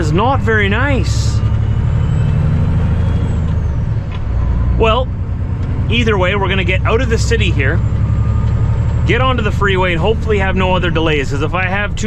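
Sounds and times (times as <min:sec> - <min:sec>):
diesel engine drone in cab: 0:00.0 - 0:12.0.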